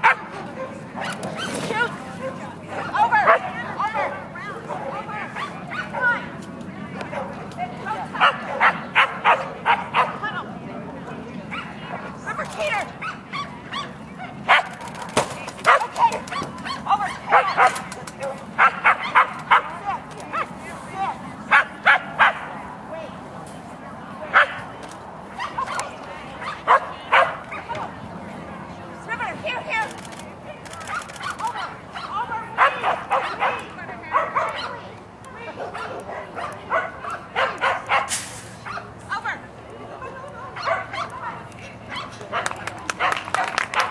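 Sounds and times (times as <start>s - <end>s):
dog barking: 0.0s - 0.3s, 8.2s - 10.2s, 13.0s - 14.8s, 15.6s - 20.5s, 21.5s - 22.5s, 26.4s - 27.6s, 30.8s - 34.8s, 35.6s - 38.9s, 40.6s - 41.2s, 41.9s - 43.9s
murmur of background voices: 0.0s - 43.9s.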